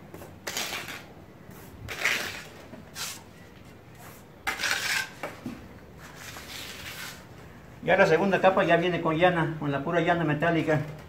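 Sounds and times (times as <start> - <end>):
metal trowel scraping: 0.4 - 1.1, 1.9 - 3.3, 4.4 - 5.4, 6.0 - 7.2.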